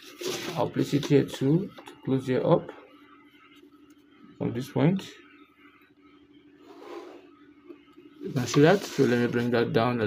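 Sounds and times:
faint steady hum: 0.0s - 10.0s
pencil scraping on paper: 6.6s - 7.3s, 8.2s - 9.6s.

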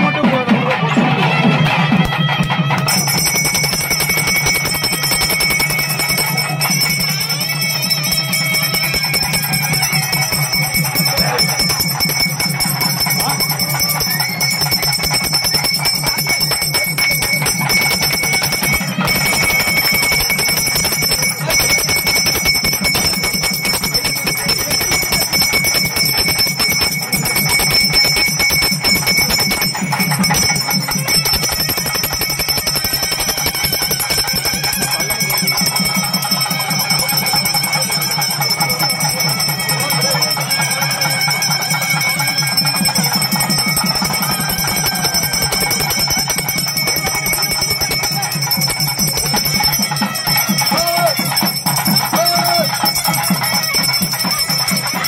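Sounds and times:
hand bell ringing rapidly: 0.0s - 55.0s.

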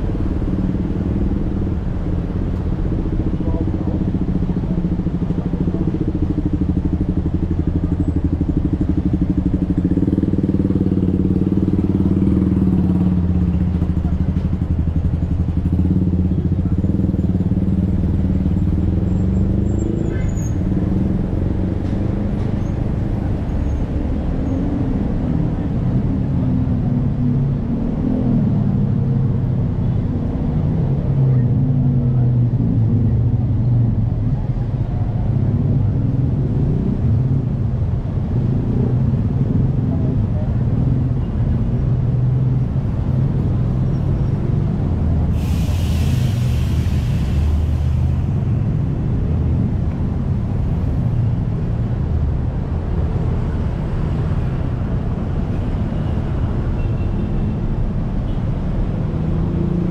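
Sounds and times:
cars and motorcycles passing: 0.0s - 59.9s.

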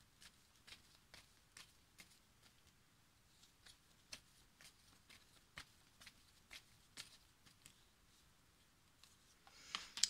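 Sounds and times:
cards being shuffled: 3.3s - 7.9s.

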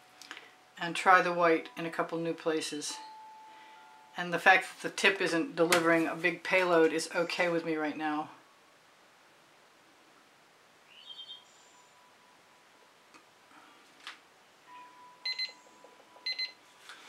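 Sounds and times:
faint electronic beeping: 14.6s - 16.8s.

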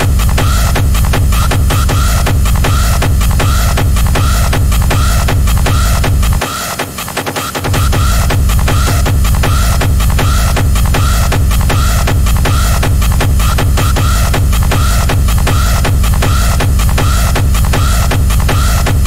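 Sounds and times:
steady kick drum: 0.0s - 19.0s.

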